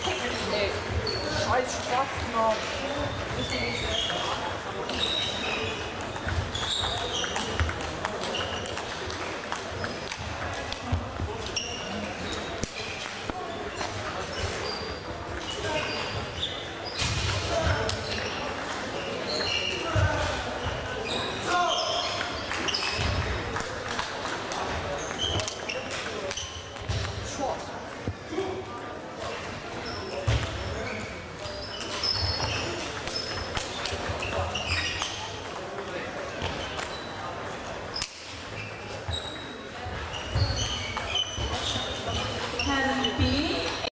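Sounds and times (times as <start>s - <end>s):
table tennis balls bouncing: 0.0s - 28.4s, 29.2s - 43.9s
voices echoing in hall: 0.0s - 43.9s
short high squeaks: 3.2s - 7.5s, 29.8s - 35.2s, 37.9s - 43.8s.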